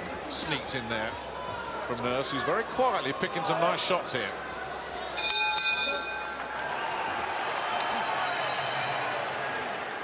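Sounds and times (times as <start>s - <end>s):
crowd chattering and cheering: 0.0s - 10.0s
ringing bell: 5.2s - 6.4s.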